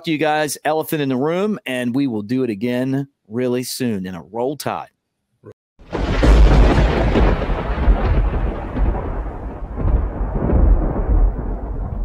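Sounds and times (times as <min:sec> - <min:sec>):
deep rumbling boom: 0:05.8 - 0:12.0.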